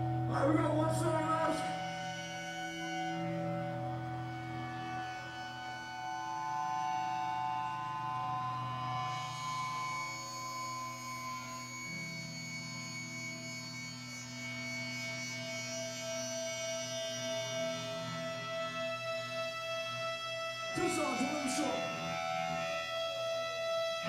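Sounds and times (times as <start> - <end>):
electric guitars droning: 0.0 - 24.0.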